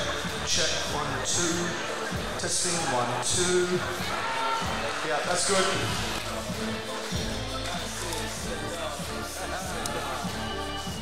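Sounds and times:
man speaking over loudspeaker: 0:00.0 - 0:06.2.

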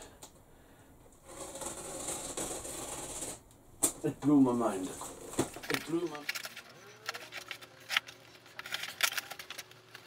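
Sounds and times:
packaging rustling: 0:04.8 - 0:10.0.

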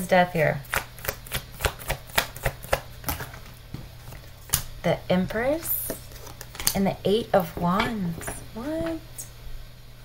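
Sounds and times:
cards being shuffled: 0:05.8 - 0:06.8.

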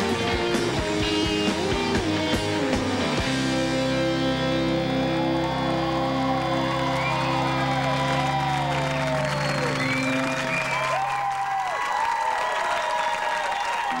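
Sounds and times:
electric guitar and bass chord: 0:00.0 - 0:10.3
audience applauding and cheering: 0:03.9 - 0:14.0.

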